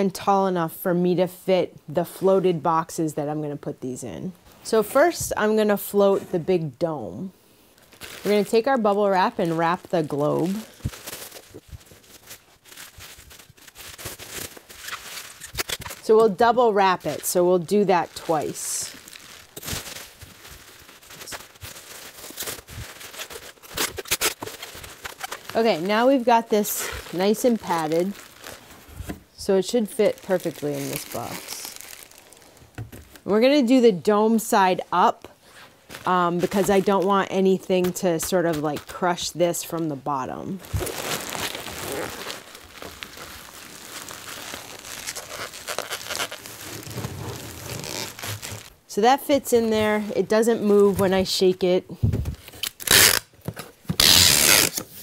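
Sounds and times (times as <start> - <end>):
bubble wrap crinkling: 7.7 - 51.5, 52.3 - 55.0.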